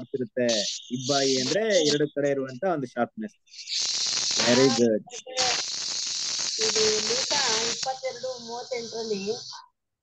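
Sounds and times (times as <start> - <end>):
loud microphone hiss: 0.0 - 9.6
faint unclear speech: 4.4 - 5.6.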